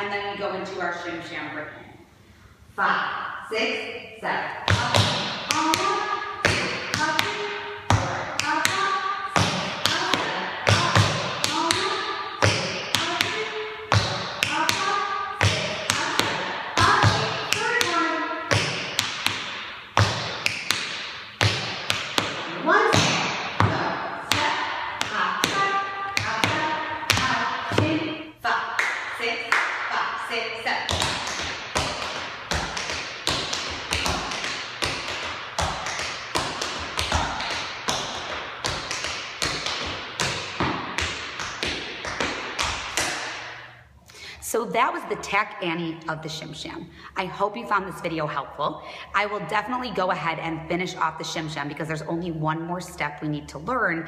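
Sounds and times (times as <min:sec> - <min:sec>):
tap shoes on hard floor: 0:30.9 - 0:43.3.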